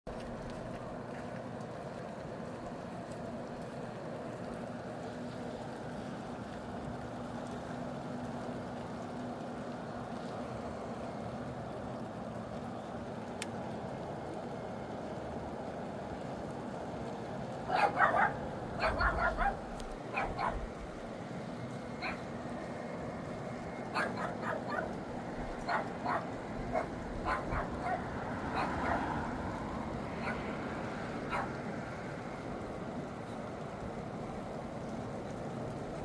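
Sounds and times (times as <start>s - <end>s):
rain and wind hiss: 0.1s - 36.0s
dog barking: 17.7s - 20.7s, 22.0s - 22.3s, 23.9s - 25.0s, 25.6s - 29.2s, 30.2s - 30.5s, 31.3s - 31.6s.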